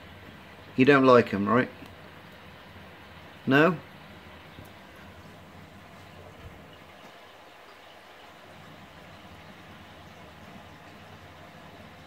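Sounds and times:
low equipment hum: 0.0 - 12.0.

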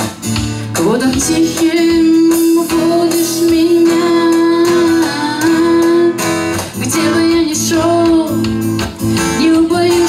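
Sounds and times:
acoustic guitar strumming: 0.0 - 10.0
woman singing: 0.6 - 10.0.

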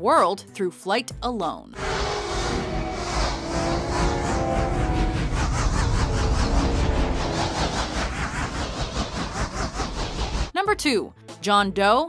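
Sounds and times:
sustained orchestral notes: 1.8 - 7.4
rushing whoosh: 1.8 - 10.6.

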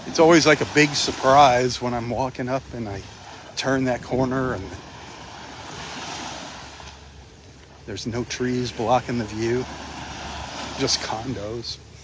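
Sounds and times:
small waves lapping: 0.0 - 12.0
man speaking: 0.1 - 4.8, 7.8 - 9.7, 10.7 - 11.8.

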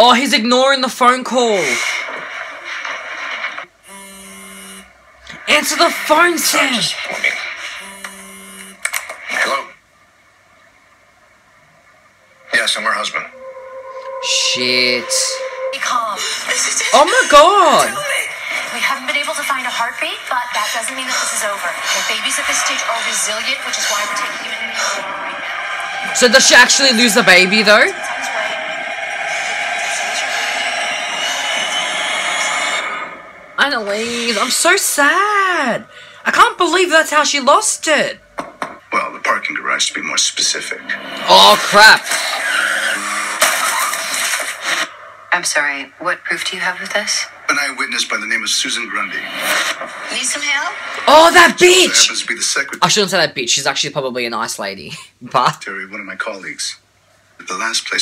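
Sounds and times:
mobile phone buzzing: 3.8 - 4.9, 7.8 - 8.9.

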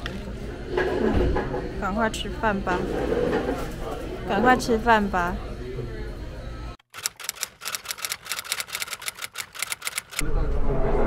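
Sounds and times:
typewriter key clicks: 6.9 - 10.2.

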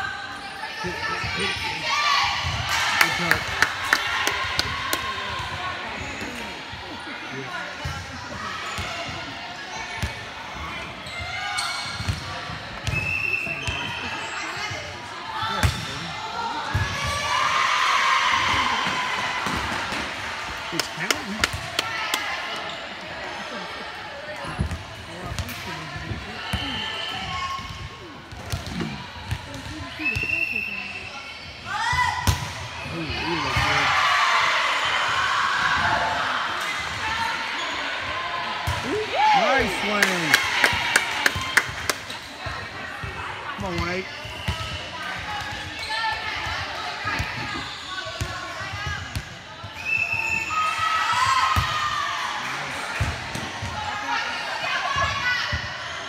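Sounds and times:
players calling and chattering: 0.0 - 56.0
volleyball slaps: 20.8 - 22.6, 39.8 - 42.2.

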